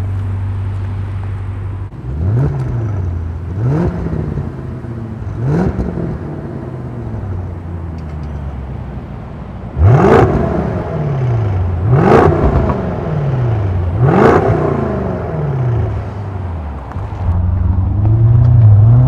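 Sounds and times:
car engine revving: 1.9 - 7.8, 9.8 - 19.0.

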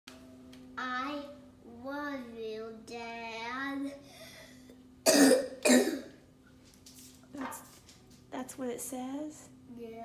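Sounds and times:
child coughing: 5.0 - 6.2.

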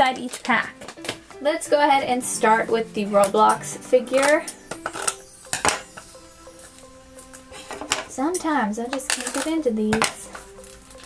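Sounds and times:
scissors clicking on plastic wrap: 8.9 - 11.0.

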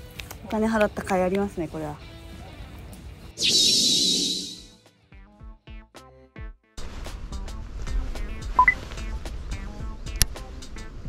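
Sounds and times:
background music: 7.2 - 11.0.

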